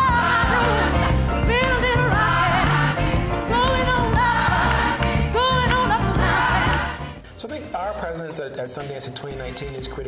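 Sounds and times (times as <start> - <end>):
woman singing gospel: 0.0 - 6.9.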